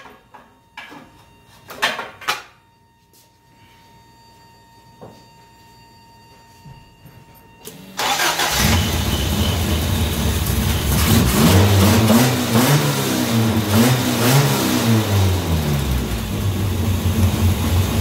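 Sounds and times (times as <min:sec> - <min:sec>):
car engine idling: 0:08.0 - 0:11.4, 0:14.9 - 0:18.0
car engine cranking and catching: 0:08.0 - 0:14.4
car engine revving unevenly: 0:08.2 - 0:18.0.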